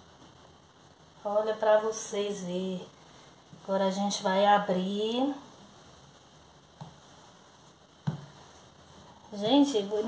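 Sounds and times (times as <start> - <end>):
dough thumping on countertop: 8.0 - 8.4.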